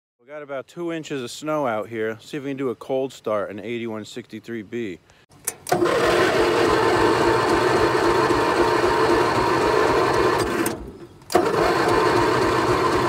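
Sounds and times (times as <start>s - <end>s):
engine cranking: 5.4s - 13.0s.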